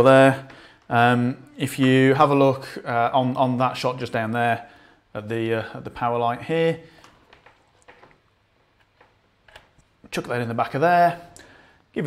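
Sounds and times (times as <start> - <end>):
faint clicks and taps: 6.9 - 10.0.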